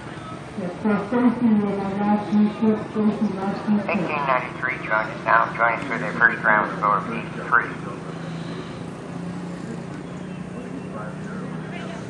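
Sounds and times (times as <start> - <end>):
faint distant voices: 0.0 - 12.0
steady low hum: 0.0 - 12.0.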